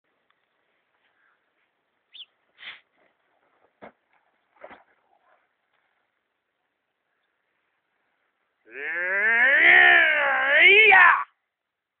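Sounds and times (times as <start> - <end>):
man's wavering martial-arts yell: 8.7 - 11.3.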